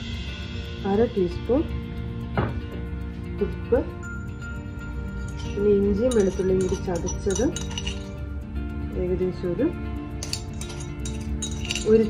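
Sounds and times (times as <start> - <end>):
background music with melody: 0.0 - 12.0
metal spoon clinking on plate: 5.2 - 8.2, 10.2 - 12.0.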